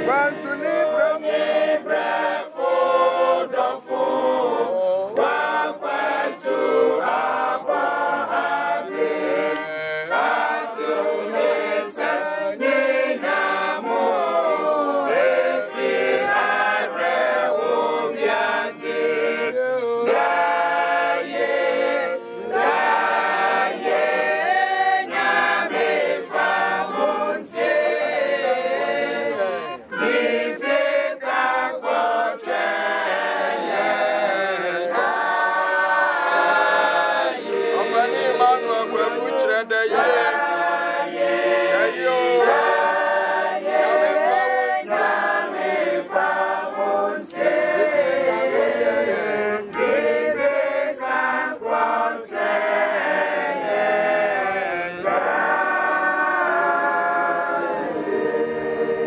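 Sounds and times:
choir singing a hymn: 0:00.0 - 0:59.0.

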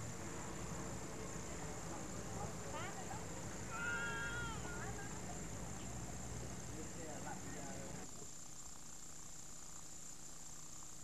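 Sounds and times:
child squealing: 0:03.7 - 0:04.8
child's high-pitched call: 0:03.7 - 0:04.9.

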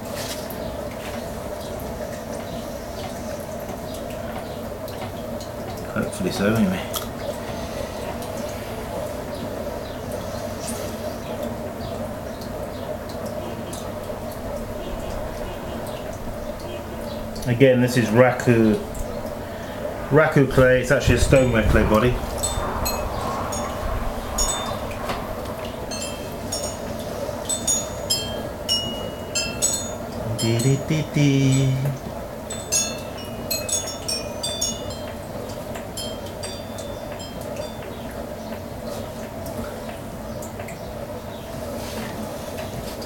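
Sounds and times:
potter's wheel humming: 0:01.4 - 0:38.6
high metallic chime tones: 0:22.3 - 0:38.0.

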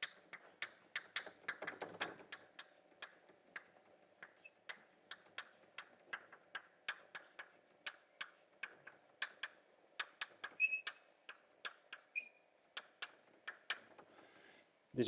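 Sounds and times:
chalk tapping on blackboard: 0:00.0 - 0:14.3.

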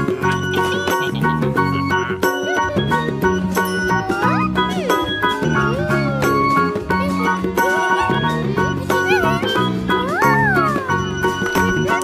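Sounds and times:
children's cartoon music: 0:00.0 - 0:12.0.

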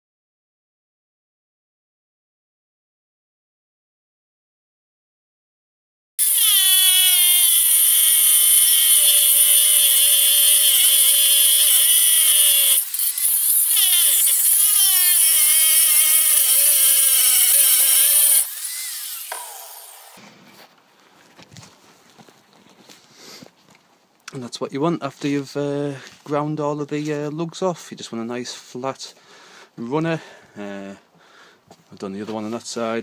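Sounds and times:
angle grinder grinding steel: 0:06.2 - 0:20.2.

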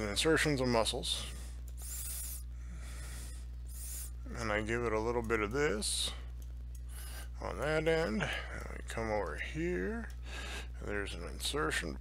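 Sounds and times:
low electrical hum: 0:00.0 - 0:12.0
soft hissing breaths: 0:01.0 - 0:04.3, 0:06.0 - 0:07.4.

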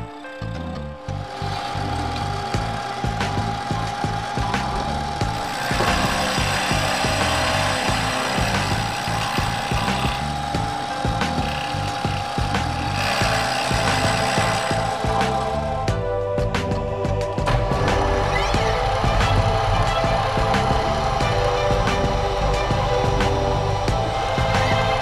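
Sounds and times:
milling machine whine: 0:00.0 - 0:25.0
rasping metal cutting: 0:01.1 - 0:15.9, 0:17.4 - 0:25.0.

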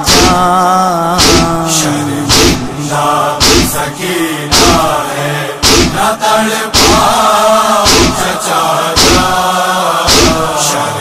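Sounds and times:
chest-beating slaps: 0:00.0 - 0:00.5, 0:01.2 - 0:01.6, 0:02.3 - 0:02.7, 0:03.4 - 0:03.8, 0:04.5 - 0:05.0, 0:05.6 - 0:06.0, 0:06.8 - 0:07.2, 0:07.8 - 0:08.3, 0:09.0 - 0:09.4, 0:10.1 - 0:10.6
person chanting a lament: 0:00.0 - 0:11.0.

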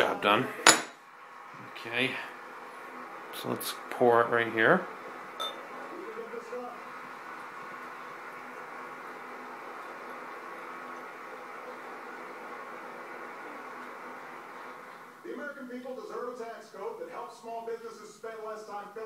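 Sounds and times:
beer pouring and foaming: 0:01.2 - 0:17.0.

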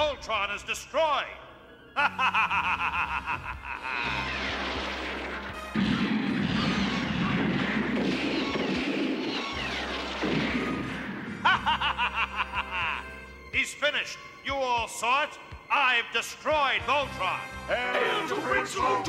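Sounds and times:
music: 0:00.0 - 0:19.0
man laughing: 0:02.0 - 0:04.3, 0:11.4 - 0:13.2
cartoon crash and tumble effect: 0:03.9 - 0:11.4
falling whistles: 0:08.3 - 0:10.2.

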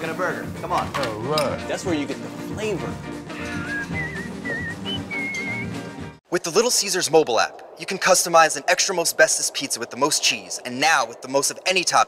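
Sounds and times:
background music: 0:00.0 - 0:06.2
whistled tune: 0:03.3 - 0:06.2.

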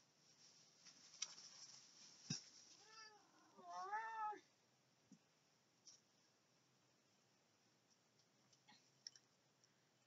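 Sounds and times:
cat meowing: 0:02.8 - 0:04.5.

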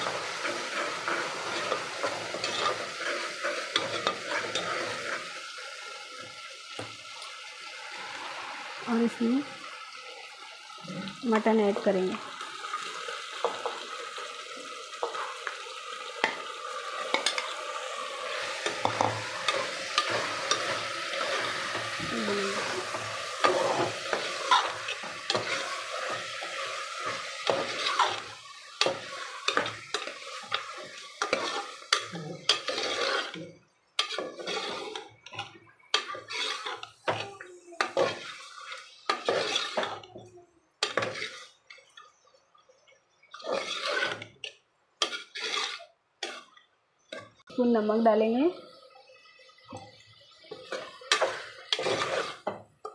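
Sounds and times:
spatula scraping and knocking pot: 0:00.0 - 0:05.3, 0:17.1 - 0:17.6, 0:18.5 - 0:33.4, 0:34.0 - 0:40.1, 0:40.8 - 0:41.6, 0:43.4 - 0:47.4, 0:50.5 - 0:52.9
meat sizzling in hot oil: 0:00.0 - 0:40.2, 0:40.8 - 0:42.3, 0:43.1 - 0:44.4, 0:45.0 - 0:52.9.

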